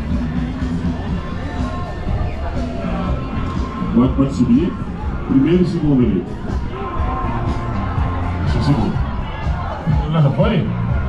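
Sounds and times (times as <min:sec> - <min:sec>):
music with strong bass line: 0:00.0 - 0:11.0.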